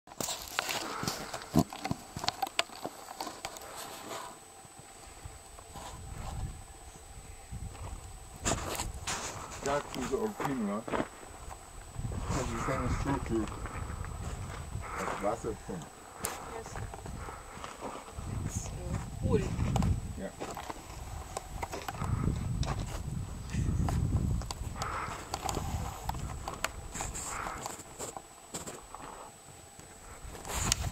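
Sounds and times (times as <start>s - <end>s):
wind rumbling on microphone: 5.0s - 28.0s, 29.9s - 30.9s.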